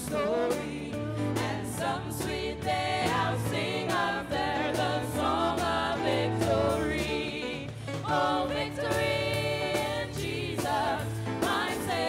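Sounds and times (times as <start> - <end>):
choir singing gospel song: 0.0 - 12.0.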